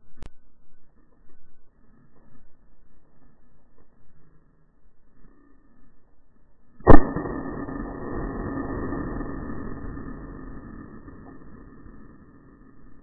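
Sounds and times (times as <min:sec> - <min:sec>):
loud shotgun shot: 0:06.8 - 0:12.6.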